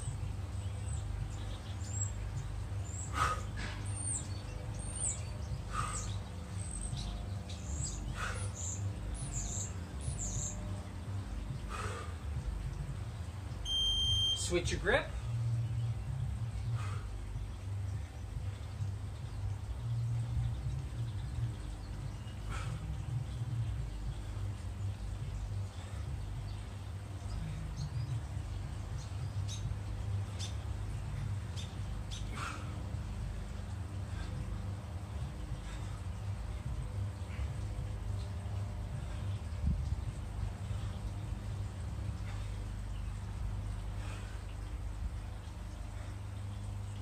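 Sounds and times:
birds chirping: 0:00.0 - 0:47.0
low steady rumble: 0:00.0 - 0:47.0
short high beep: 0:13.7 - 0:14.4.

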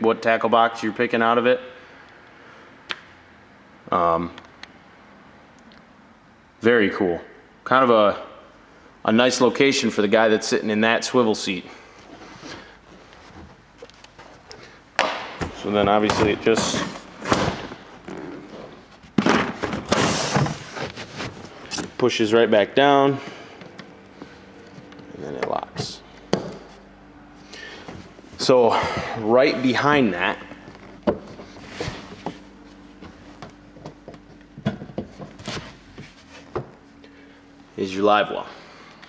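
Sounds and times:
faint steady hum: 0:00.0 - 0:39.0.

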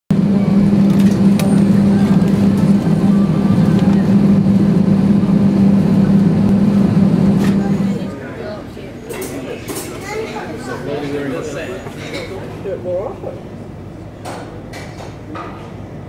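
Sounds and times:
aircraft systems low drone: 0:00.1 - 0:08.2.

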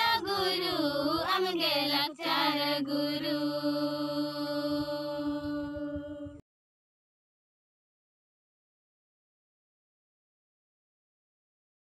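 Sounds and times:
high solo voice singing: 0:00.0 - 0:06.4.

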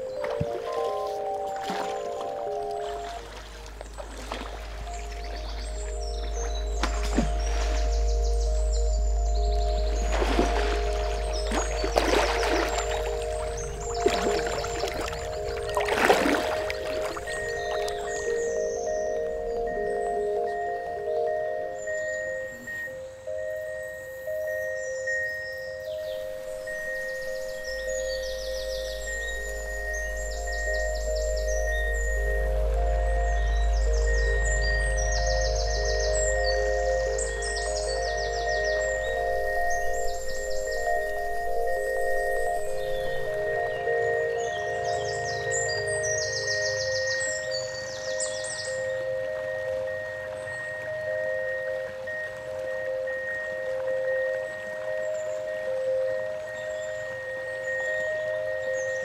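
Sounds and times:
chiming mallet tones: 0:00.0 - 0:59.0.

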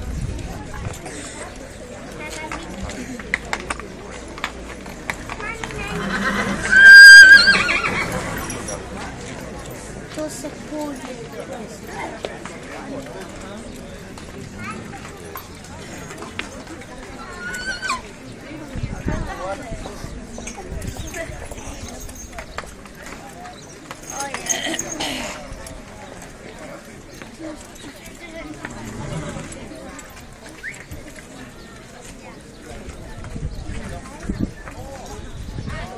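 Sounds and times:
people talking: 0:00.0 - 0:35.9
horse hooves on pavement: 0:00.2 - 0:35.9
horse whinnying: 0:05.9 - 0:08.6, 0:17.4 - 0:18.0.

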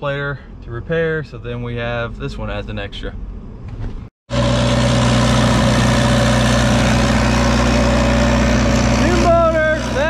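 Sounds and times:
stationary engine running steadily: 0:03.2 - 0:10.0.

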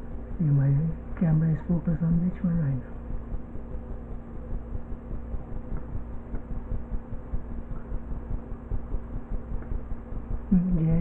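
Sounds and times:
low hum: 0:00.0 - 0:11.0
low rumble: 0:00.0 - 0:11.0.

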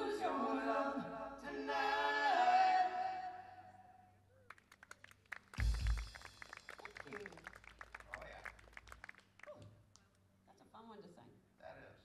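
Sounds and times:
scattered clapping: 0:04.5 - 0:10.1.

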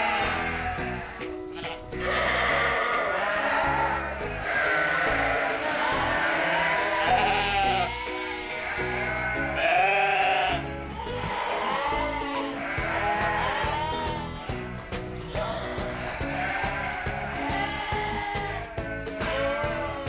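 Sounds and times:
background music: 0:00.0 - 0:20.0
sheep bleating: 0:00.0 - 0:20.0.

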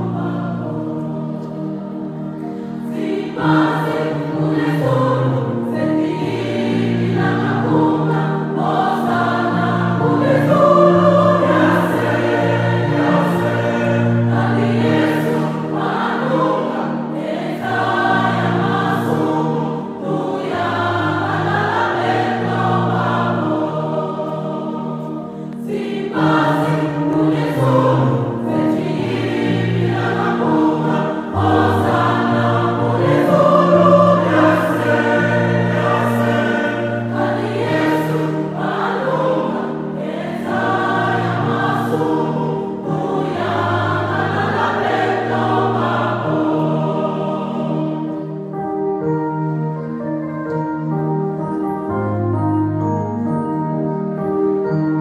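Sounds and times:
choir singing gospel: 0:00.0 - 0:49.6.

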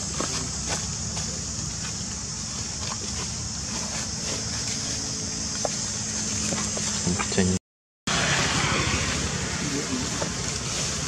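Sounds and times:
high hiss: 0:08.1 - 0:11.0.

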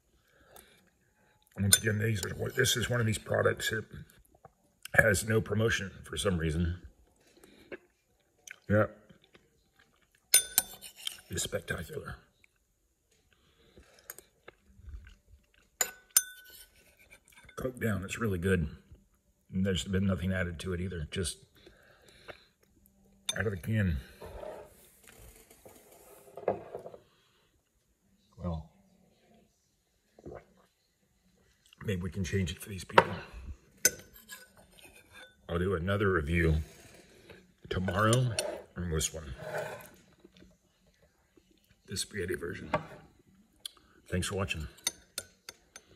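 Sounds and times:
metal spoon clinking on bowl: 0:01.7 - 0:02.4, 0:10.3 - 0:11.3, 0:15.8 - 0:17.6, 0:33.8 - 0:35.4, 0:44.4 - 0:45.9
soft chewing: 0:06.8 - 0:11.3, 0:12.3 - 0:17.5, 0:21.5 - 0:23.3, 0:39.8 - 0:41.9
faint spoon scrapes: 0:10.5 - 0:11.5, 0:16.0 - 0:17.6, 0:24.0 - 0:27.2, 0:33.8 - 0:35.5, 0:36.3 - 0:40.3.

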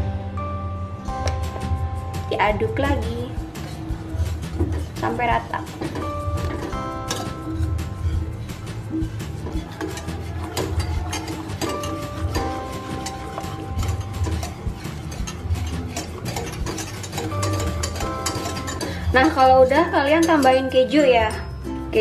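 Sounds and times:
light background music: 0:00.0 - 0:22.0
whisk scraping a metal saucepan: 0:02.6 - 0:21.6.

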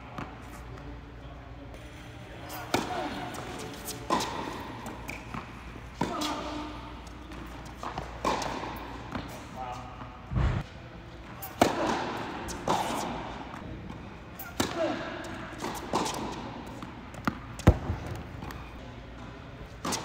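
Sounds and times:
tennis balls struck by racquets: 0:02.6 - 0:10.6, 0:11.4 - 0:18.8
tennis balls bouncing on hard court: 0:02.7 - 0:09.8, 0:11.4 - 0:20.0.

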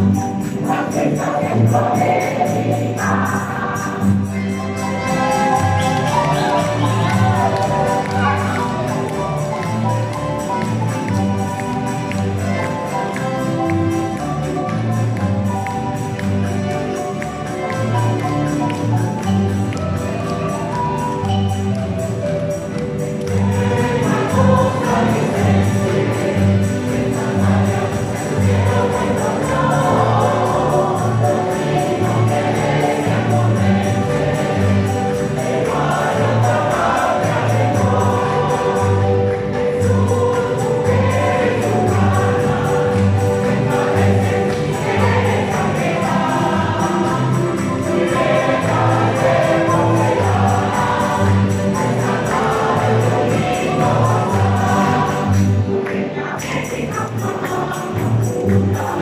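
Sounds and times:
mixed choir singing: 0:00.0 - 0:04.3, 0:04.9 - 0:15.0, 0:23.2 - 0:59.0
strummed guitars: 0:00.0 - 0:59.0.

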